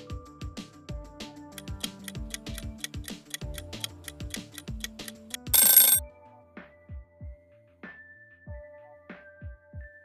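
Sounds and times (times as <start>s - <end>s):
countdown timer music: 1.6s - 6.0s
alarm bell ringing: 4.4s - 6.0s.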